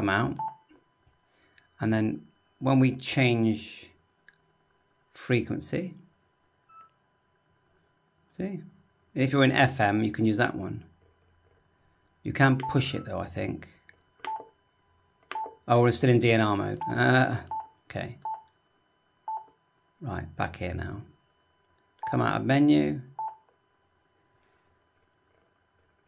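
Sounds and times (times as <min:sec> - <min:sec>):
faint electronic beep: 0:06.7 - 0:07.0
transceiver key beeps: 0:12.6 - 0:13.1, 0:14.2 - 0:14.5.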